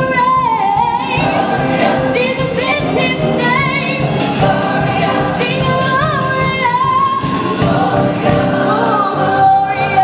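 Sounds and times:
drums keeping steady beat: 0.0s - 10.0s
gospel choir singing: 0.0s - 10.0s
live band playing: 0.0s - 10.0s
woman singing lead: 0.0s - 10.0s.

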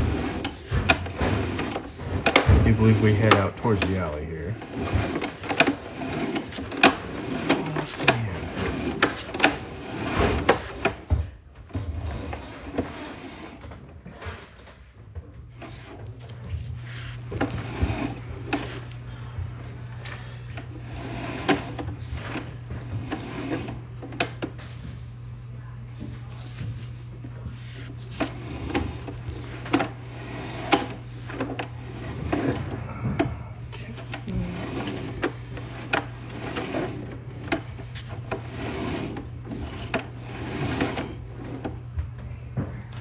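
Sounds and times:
steady low hum: 0.0s - 43.0s.

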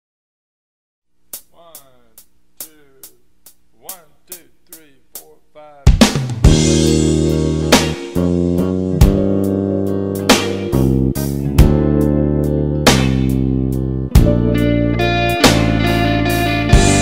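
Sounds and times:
blues band on drums and guitar: 5.2s - 17.0s.

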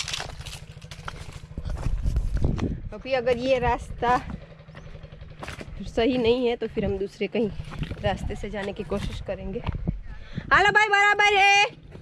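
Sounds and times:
footsteps crunching on stones: 0.0s - 2.8s, 4.3s - 6.4s, 7.5s - 9.9s
microphone handling rumble: 0.0s - 10.7s.

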